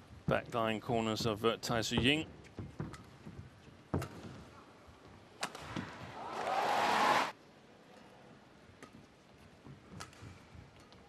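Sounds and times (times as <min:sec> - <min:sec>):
crowd cheering loudly: 0:06.2 - 0:07.3.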